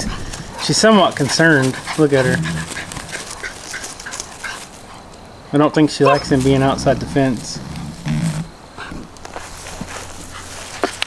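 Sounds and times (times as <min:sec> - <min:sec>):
dog growling: 0:00.0 - 0:04.6, 0:05.9 - 0:10.7.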